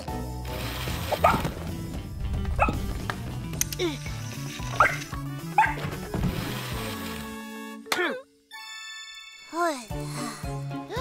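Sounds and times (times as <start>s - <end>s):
light background music: 0.0s - 11.0s
cartoon puppy barking and yipping: 4.8s - 5.8s.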